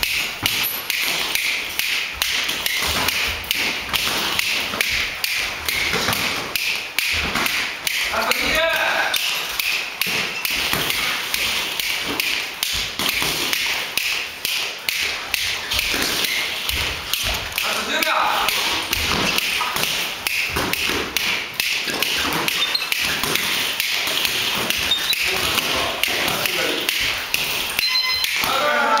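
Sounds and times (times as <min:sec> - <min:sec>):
short electronic beeps: 0:22.6 - 0:22.9, 0:27.8 - 0:28.4.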